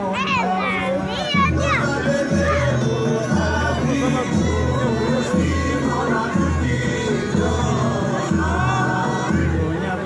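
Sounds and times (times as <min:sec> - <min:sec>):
children's excited chatter: 0:00.0 - 0:04.0
music with deep bass line: 0:01.4 - 0:10.0.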